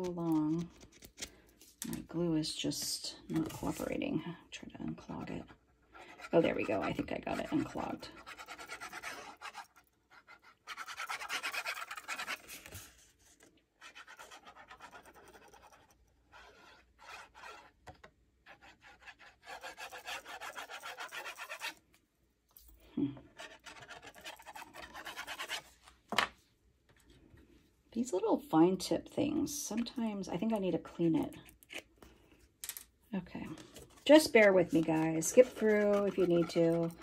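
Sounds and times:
paper rubbing and scraping: 6.1 - 17.7, 18.5 - 21.8, 23.4 - 25.8, 33.6 - 37.0.

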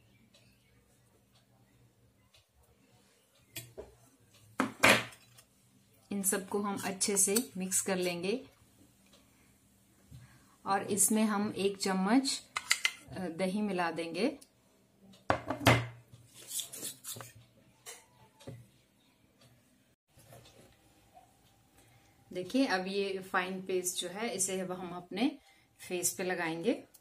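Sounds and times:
spoon stirring paste in metal bowl: 6.2 - 8.2, 16.4 - 18.2
steel spoon scraping a steel bowl: 16.4 - 17.4.

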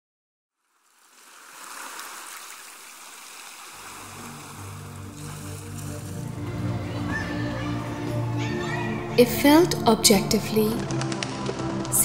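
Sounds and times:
sea surf washing: 0.8 - 7.0
low sustained music notes: 3.8 - 12.0.

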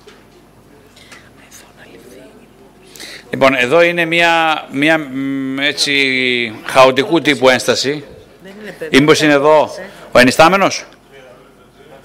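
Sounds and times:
low murmured speech: 0.0 - 3.4
people whispering: 0.4 - 3.4.

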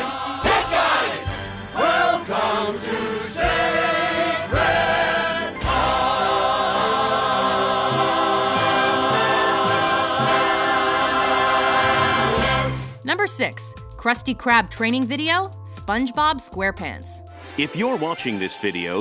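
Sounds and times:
ensemble singing show tune: 0.0 - 13.5
musical backing: 0.0 - 19.0.

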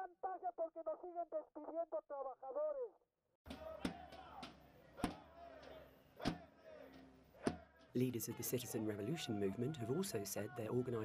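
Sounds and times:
man speaking through megaphone: 7.9 - 11.0.

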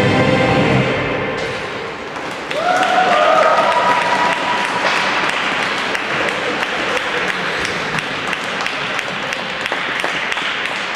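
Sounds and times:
audience applauding: 2.2 - 10.9.

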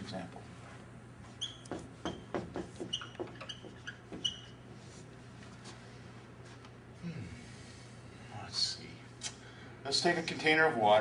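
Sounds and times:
marker squeaking on whiteboard: 1.3 - 4.7.

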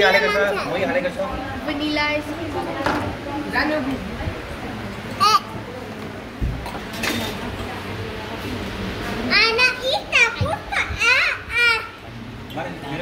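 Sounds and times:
cafe background noise: 0.0 - 13.0
child squealing and calling: 5.2 - 5.5.

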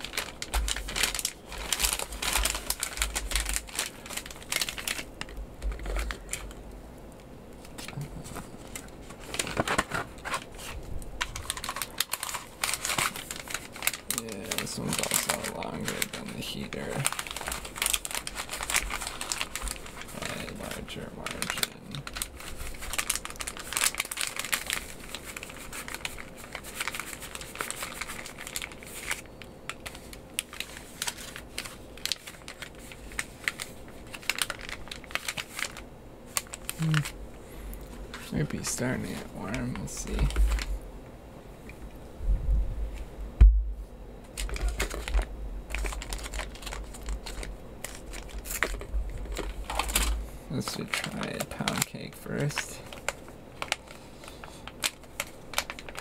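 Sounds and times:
cardboard carton rustling: 0.0 - 6.5, 7.7 - 21.5
foil pouches crinkling: 0.0 - 6.8, 7.5 - 40.8, 44.3 - 56.0.

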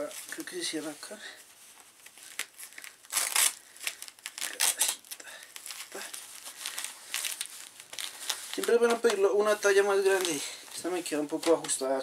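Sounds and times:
fabric rustling: 0.0 - 12.0
velcro ripping open: 2.0 - 8.9.

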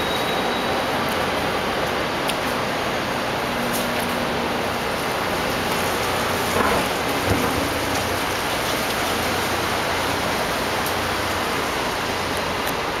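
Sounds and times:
city street ambience: 0.0 - 13.0.

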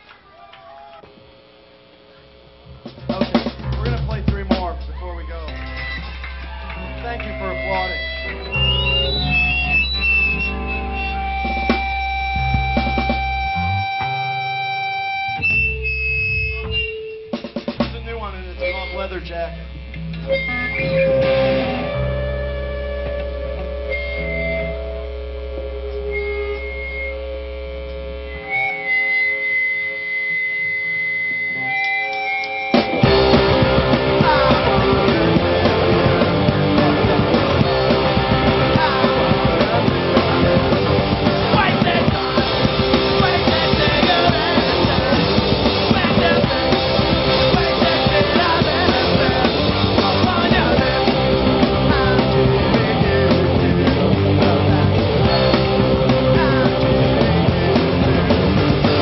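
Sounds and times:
amplifier electrical hum: 0.0 - 31.7
high guitar feedback tones: 0.7 - 59.0
live band playing loudly: 2.7 - 27.4, 28.0 - 59.0
faint held tone: 18.4 - 33.1.

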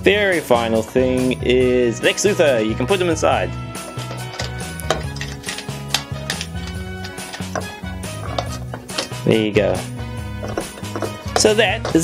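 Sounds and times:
background music with bass line: 0.0 - 12.0
plastic toy clicks and knocks: 4.1 - 9.2.

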